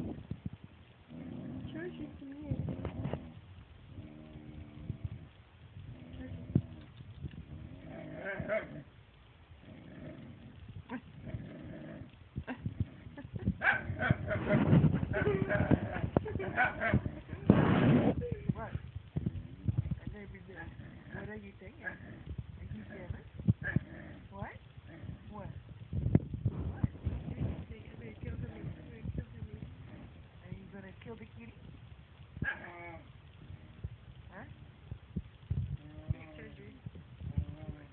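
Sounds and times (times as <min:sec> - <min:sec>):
dog growling and grumbling: 0:01.1 - 0:08.9, 0:09.6 - 0:25.7, 0:26.5 - 0:30.4, 0:32.4 - 0:34.8, 0:35.6 - 0:37.9.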